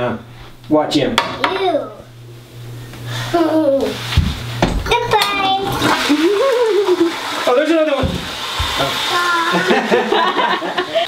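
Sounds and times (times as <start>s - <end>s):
toilet flushing: 3.4s - 11.0s.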